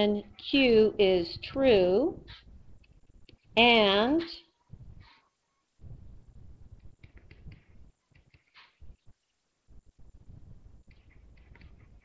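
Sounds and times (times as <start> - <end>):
stylus tapping on tablet screen: 6.8 - 8.9, 10.8 - 12.0.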